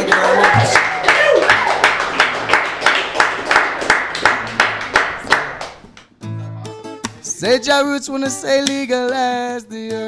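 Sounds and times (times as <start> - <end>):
hand claps: 0.0 - 6.1, 8.6 - 9.3.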